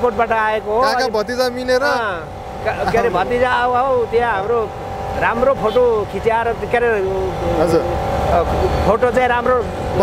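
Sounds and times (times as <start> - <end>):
low traffic rumble: 0.0 - 10.0
man speaking: 0.0 - 10.0.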